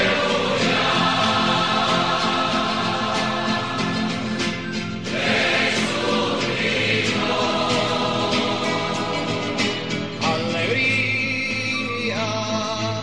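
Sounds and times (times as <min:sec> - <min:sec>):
choir singing a hymn: 0:00.0 - 0:10.8.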